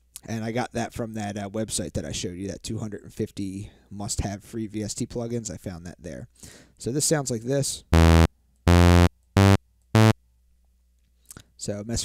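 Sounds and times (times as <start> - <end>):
synthesizer bass notes: 8.0 - 10.2.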